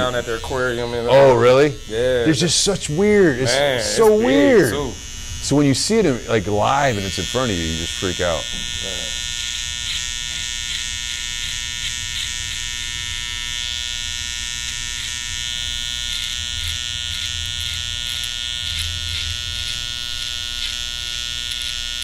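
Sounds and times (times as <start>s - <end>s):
electric beard trimmer buzzing: 0.0s - 22.0s.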